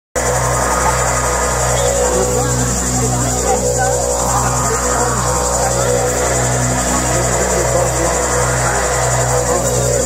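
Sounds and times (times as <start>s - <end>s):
electronic music with low drone: 0.2s - 10.0s
sustained high tone: 0.2s - 10.0s.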